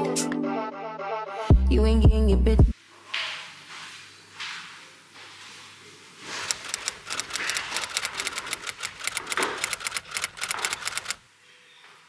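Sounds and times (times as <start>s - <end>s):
fast typing on laptop keyboard: 6.5s - 11.2s.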